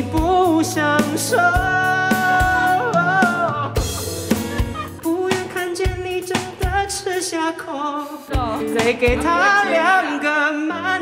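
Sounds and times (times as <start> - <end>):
drum kit hits: 0.0 - 7.3.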